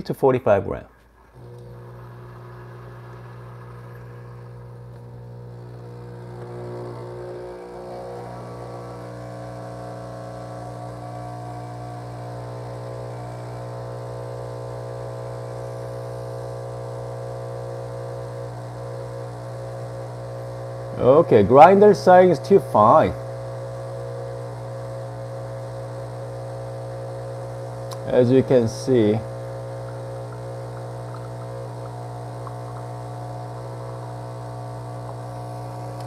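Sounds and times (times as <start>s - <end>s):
espresso machine pump humming: 1.2s - 36.0s.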